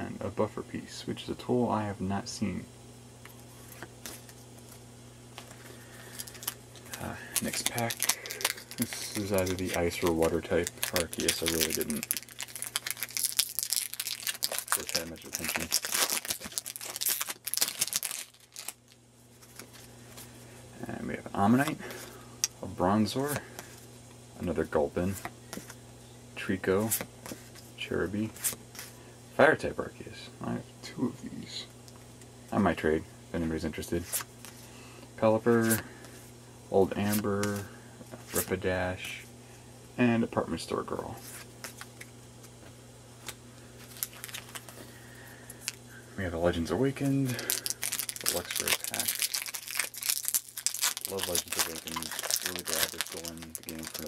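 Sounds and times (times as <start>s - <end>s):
steady low hum: 0.0s - 54.0s
foil wrapper crinkling and tearing: 5.4s - 19.9s, 43.8s - 44.9s, 47.2s - 54.0s.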